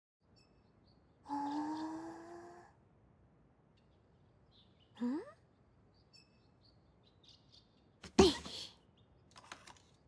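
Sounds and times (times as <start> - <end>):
faint birds chirping: 0.2 - 10.0.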